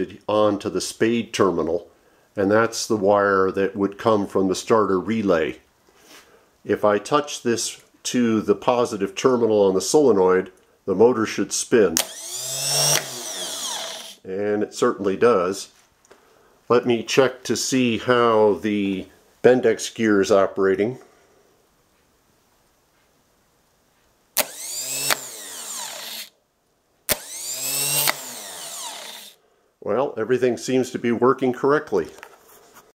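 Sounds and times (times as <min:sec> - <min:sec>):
starter motor whining: 0:12.0 - 0:14.2, 0:24.4 - 0:26.3, 0:27.1 - 0:29.4.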